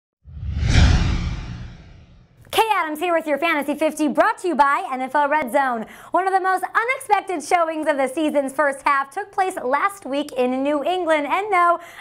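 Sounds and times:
whoosh with low rumble: 0:00.2 - 0:02.4.

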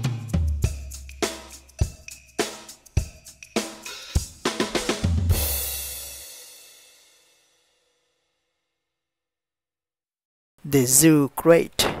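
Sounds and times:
drum kit beat: 0:00.0 - 0:07.1
cymbal crash: 0:03.6 - 0:07.7.

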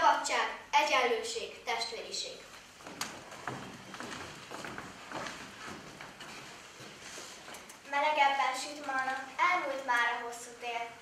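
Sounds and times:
footsteps on wooden stage: 0:02.5 - 0:07.8.

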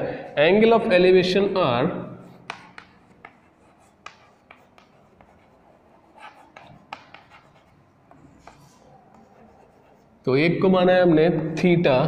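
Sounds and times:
chalk writing on blackboard: 0:02.2 - 0:10.3.

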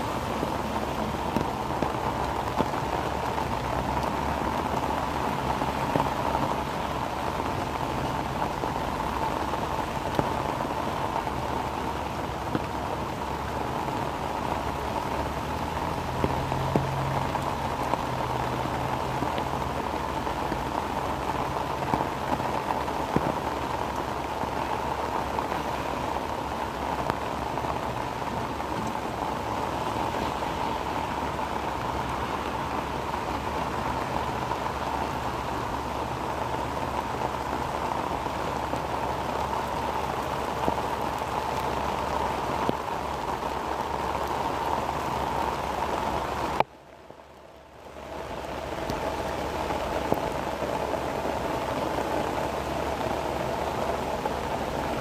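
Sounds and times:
heavy rain falling: 0:00.0 - 0:55.0.

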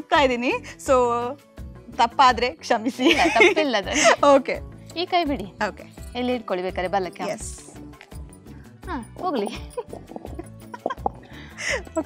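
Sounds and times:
background music: 0:00.0 - 0:12.0
women laughing and exclaiming: 0:02.9 - 0:04.4.

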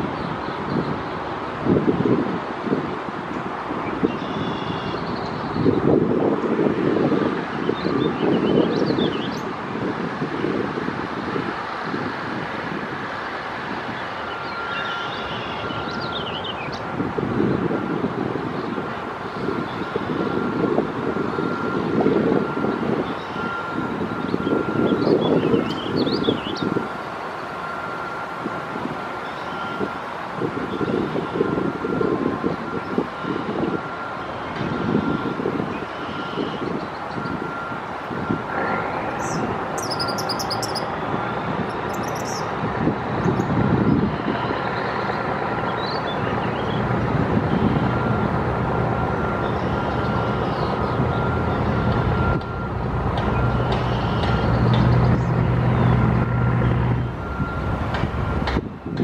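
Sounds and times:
wind gusting on microphone: 0:00.0 - 0:14.9, 0:15.5 - 0:59.0
heavy engine low hum: 0:00.0 - 0:59.0
road traffic rumble: 0:00.0 - 0:59.0
faint high beeping tone: 0:39.8 - 0:40.9, 0:41.7 - 0:42.4.

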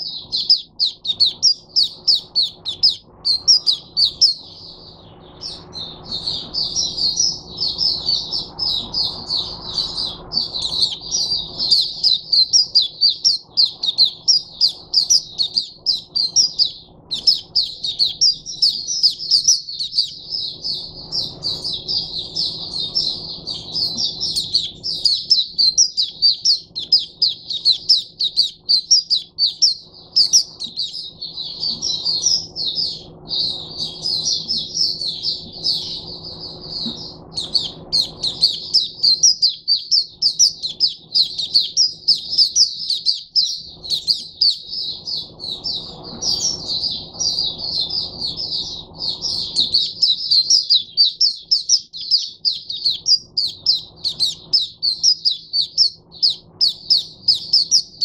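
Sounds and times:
bird twittering song: 0:00.0 - 0:58.0.

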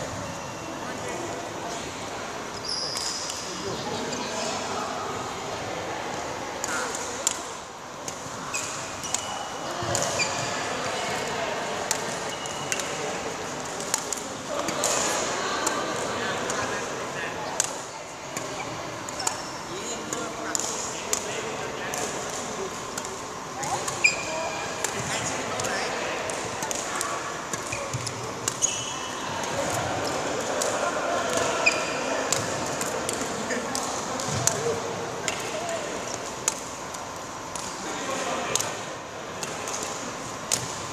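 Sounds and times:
shoes squeaking on court: 0:00.0 - 0:00.9, 0:02.5 - 0:04.6, 0:08.5 - 0:11.2, 0:18.5 - 0:19.7, 0:23.6 - 0:25.8, 0:27.5 - 0:29.2, 0:31.4 - 0:32.5.

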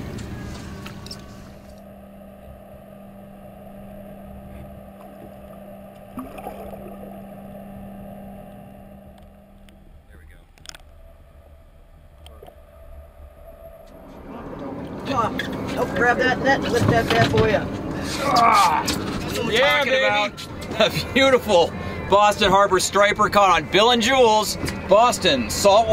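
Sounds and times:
boat engine idling: 0:00.0 - 0:25.9.

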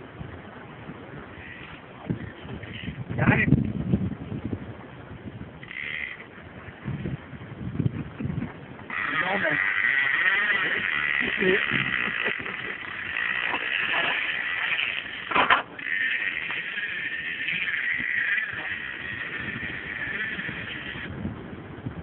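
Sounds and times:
fishing reel drag buzzing: 0:01.3 - 0:03.1, 0:05.6 - 0:07.4, 0:08.8 - 0:21.2.

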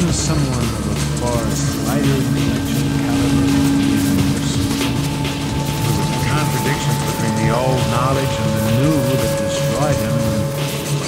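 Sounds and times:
chirping pitch sweeps: 0:00.0 - 0:11.0
higher steady synth tone: 0:00.0 - 0:11.0
low synthesizer drone: 0:00.0 - 0:11.0
pulsing low synth pattern: 0:00.0 - 0:11.0
scattered clicks: 0:00.0 - 0:11.0.

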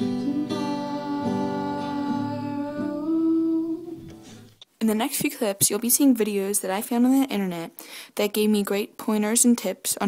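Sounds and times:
girl singing: 0:00.0 - 0:04.2
acoustic guitar: 0:00.0 - 0:04.7.

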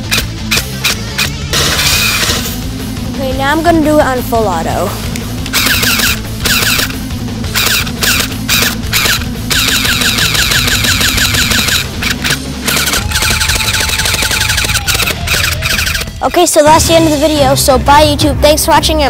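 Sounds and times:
airsoft gun firing bursts: 0:05.5 - 0:16.2.

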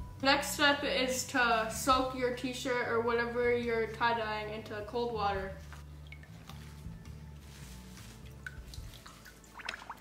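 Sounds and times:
faint background music: 0:00.0 - 0:10.0
water splashes and drips: 0:05.6 - 0:06.9, 0:07.5 - 0:10.0.

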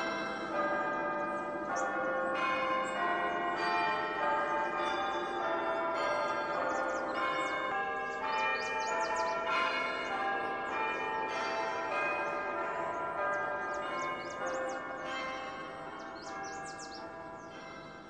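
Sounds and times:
birds chirping: 0:00.0 - 0:18.0
church bells pealing: 0:00.0 - 0:18.0.

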